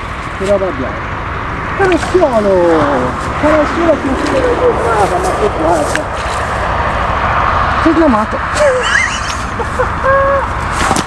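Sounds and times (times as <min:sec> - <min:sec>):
man's broken voice sounds: 0:01.8 - 0:06.1.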